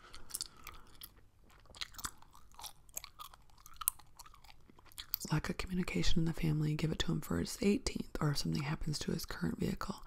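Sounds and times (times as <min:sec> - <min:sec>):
gum chewing clicks and smacks: 0:00.0 - 0:05.4.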